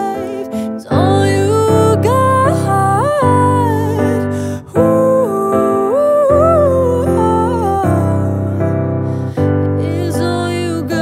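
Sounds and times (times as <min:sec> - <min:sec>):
woman singing wordless melody: 0:00.0 - 0:11.0.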